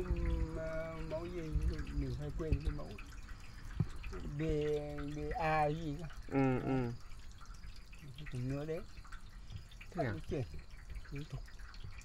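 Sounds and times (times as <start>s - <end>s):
man's voice: 0.0s - 2.9s
water drip: 0.0s - 12.0s.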